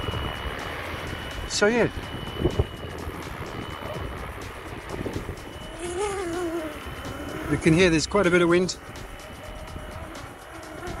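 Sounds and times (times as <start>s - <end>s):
rc helicopter rotor whine: 0.0s - 11.0s
wind buffeting microphone: 0.0s - 11.0s.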